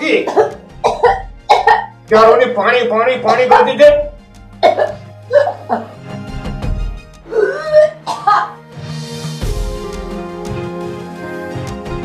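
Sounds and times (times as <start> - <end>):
faint background music drone: 0.0 - 12.0
person coughing: 0.2 - 1.9, 4.6 - 5.9, 7.7 - 8.6.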